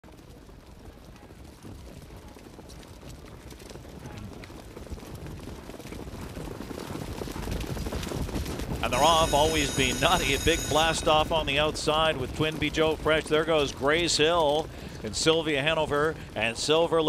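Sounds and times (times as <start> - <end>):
hoofbeats of horses: 0.0 - 17.0.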